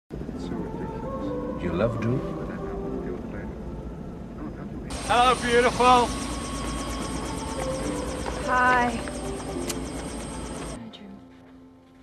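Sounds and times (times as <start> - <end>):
quiet speech: 0.4 - 3.8, 4.4 - 5.1
helicopter cabin drone: 2.4 - 10.8.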